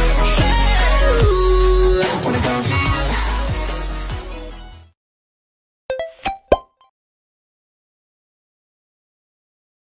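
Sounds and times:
rising popping jingle: 5.9 - 6.9.

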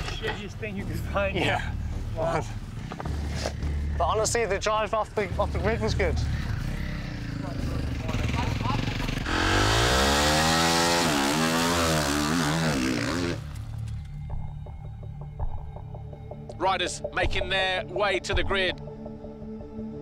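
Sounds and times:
motocross bike engine revving: 6.2 - 13.6.

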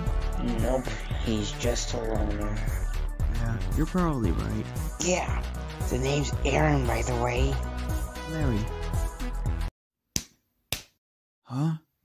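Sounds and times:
background music: 0.0 - 9.7.

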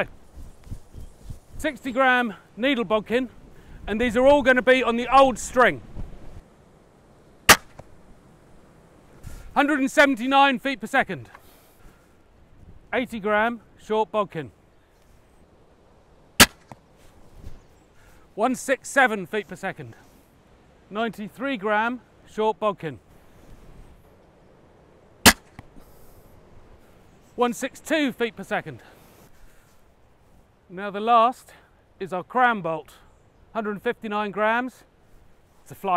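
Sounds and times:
crossbow string cracking: 7.5 - 7.9, 16.4 - 16.9, 25.2 - 25.9.

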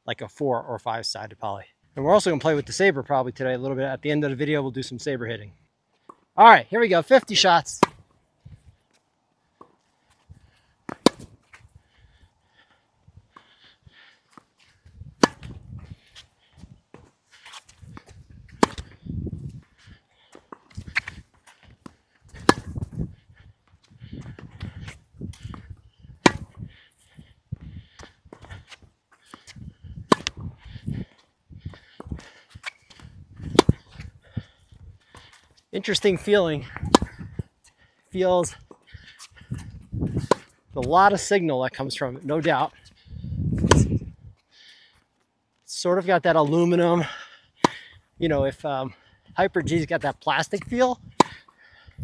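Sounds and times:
racquet striking tennis ball: 7.7 - 8.1, 10.9 - 11.4, 15.2 - 15.6, 17.5 - 19.0, 21.8 - 23.2, 26.2 - 26.6, 30.1 - 30.6, 33.4 - 34.0, 35.9 - 37.3, 40.1 - 40.6, 43.5 - 44.0, 47.6 - 47.9, 50.6 - 51.6.

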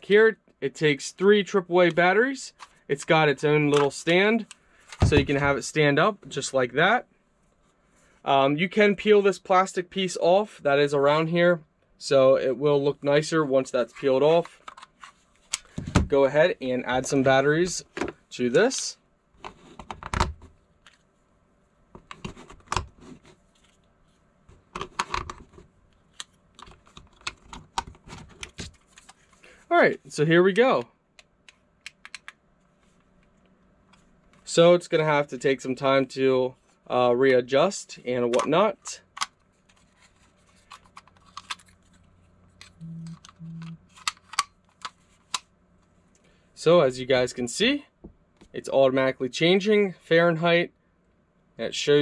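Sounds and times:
short low buzzes: 42.8 - 43.8.

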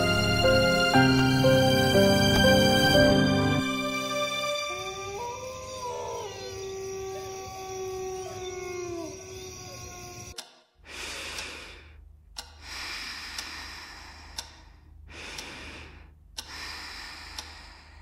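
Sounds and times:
dog howling: 4.7 - 10.4.

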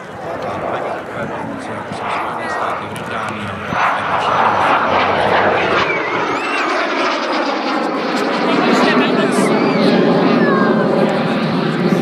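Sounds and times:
jet engine whine: 0.0 - 12.0
jet roar: 0.0 - 12.0.

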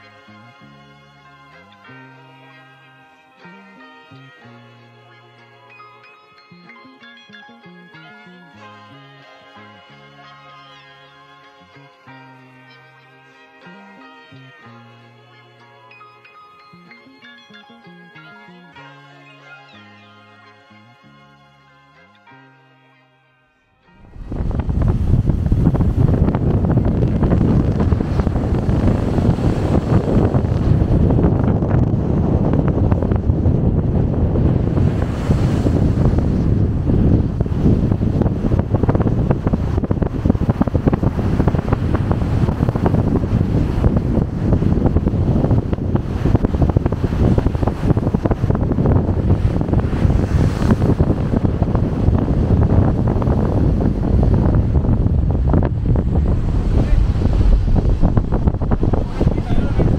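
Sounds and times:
wind buffeting microphone: 23.9 - 59.9
rush of ship's churning wake: 24.0 - 59.9.

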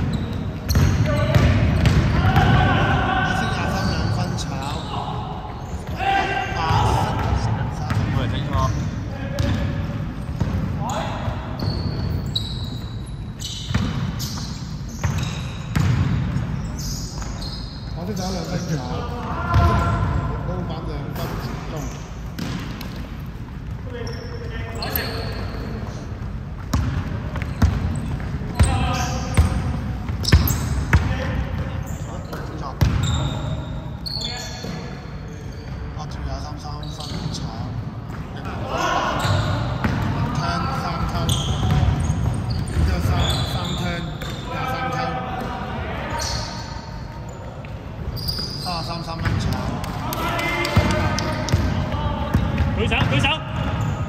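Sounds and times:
players calling out: 0.0 - 15.6, 38.3 - 54.0
basketball bouncing on hardwood: 0.1 - 2.5.

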